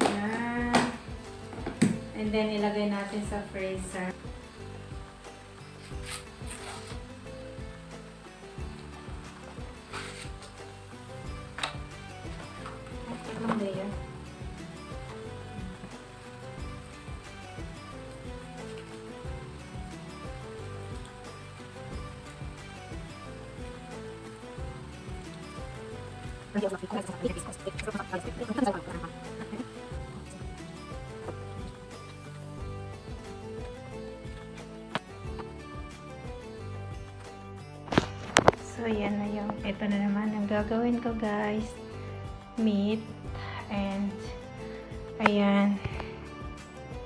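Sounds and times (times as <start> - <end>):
background music: 0.0 - 47.0.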